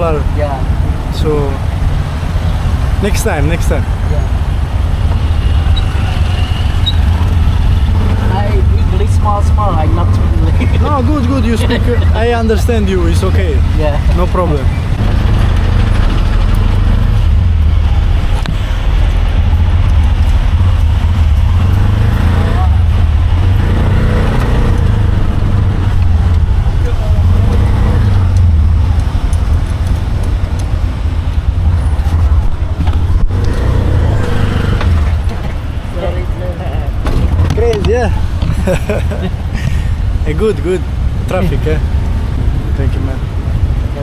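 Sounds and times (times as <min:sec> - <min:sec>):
auto-rickshaw engine rumble: 0:00.0 - 0:44.0.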